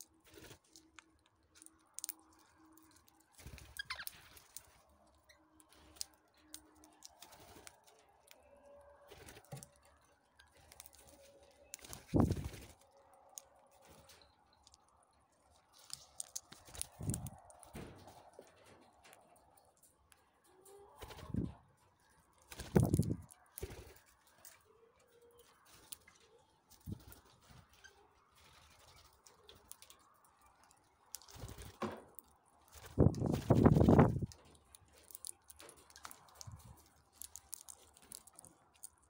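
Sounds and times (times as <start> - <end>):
birds clicking and tapping at a cup: 0.0 - 39.0
wing flutters: 10.5 - 13.1, 20.7 - 21.7, 22.4 - 24.6, 31.2 - 31.8, 32.7 - 34.4.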